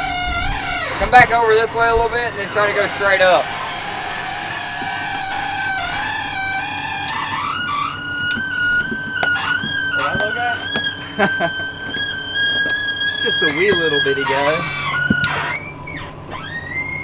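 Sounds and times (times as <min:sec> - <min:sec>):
excavator hydraulics whining: 0:00.0 - 0:17.0.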